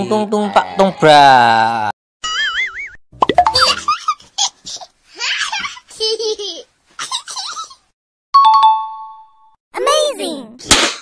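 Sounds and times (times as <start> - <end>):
wobbling warbling tone: 3.2 - 3.9.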